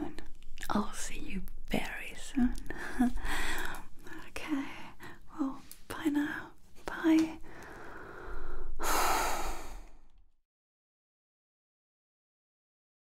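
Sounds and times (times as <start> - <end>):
woman whispering: 0.0 - 7.6
long loud sigh: 8.8 - 10.0.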